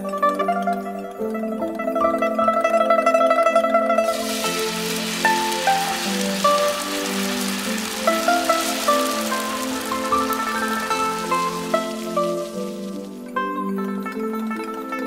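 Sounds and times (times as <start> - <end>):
plucked-string music: 0.0 - 15.0
hot oil sizzling on fish: 4.0 - 13.3.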